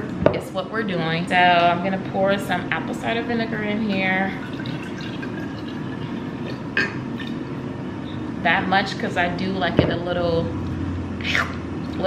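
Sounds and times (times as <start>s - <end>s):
liquid pouring into glass: 4.2s - 7.6s.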